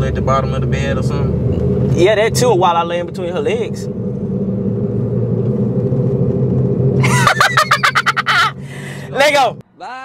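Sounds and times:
car engine and road noise: 0.0 - 9.8
man laughing loudly: 7.0 - 8.6.

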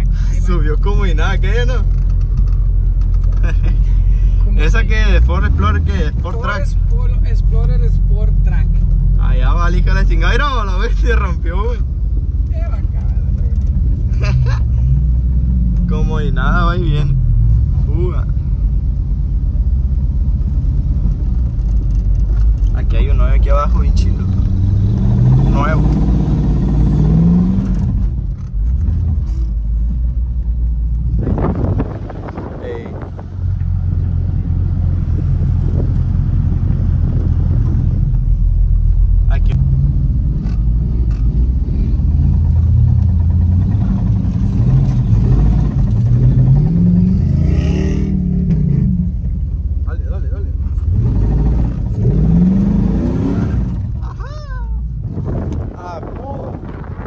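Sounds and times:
vehicle engine revving in sand: 24.1 - 28.1, 39.5 - 49.2, 50.7 - 54.1.

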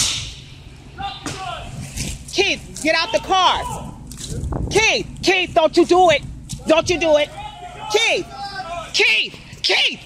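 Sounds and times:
sharp knock or slam: 0.0 - 0.5
distant shouted voices: 0.0 - 10.0.

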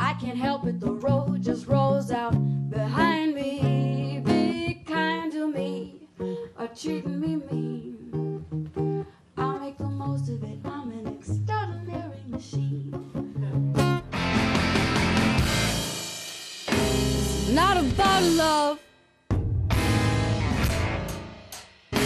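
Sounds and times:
plucked acoustic guitar: 0.0 - 5.0, 6.3 - 15.8
woman singing: 0.0 - 8.5, 9.4 - 13.8, 17.5 - 18.8.

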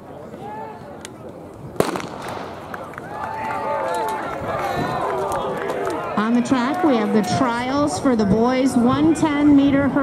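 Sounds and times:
sharp bang: 1.8 - 2.7.

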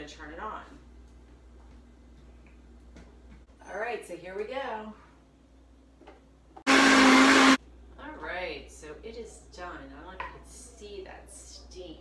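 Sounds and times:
blender motor running: 6.7 - 7.6.

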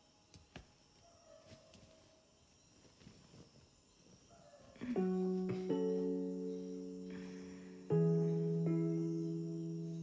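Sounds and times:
crickets chirring: 0.0 - 10.0
soft rustles: 1.4 - 4.3
music: 4.9 - 10.0.

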